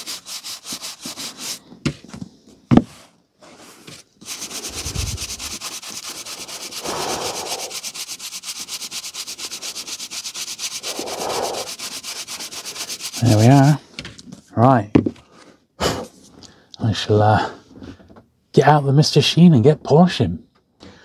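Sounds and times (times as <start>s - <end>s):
brush scrubbing paper edges: 0.0s - 1.6s, 3.6s - 13.8s.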